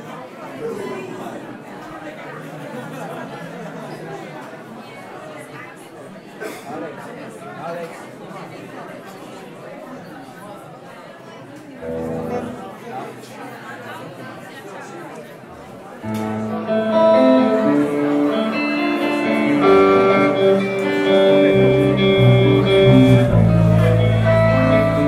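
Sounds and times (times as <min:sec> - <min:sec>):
audience chatter: 0:00.0 - 0:25.0
amplified instrument note: 0:16.1 - 0:25.0.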